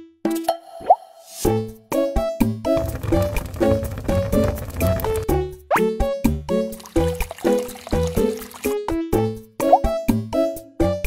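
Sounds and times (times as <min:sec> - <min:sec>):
bouncy cartoon music: 0:02.8 - 0:10.8.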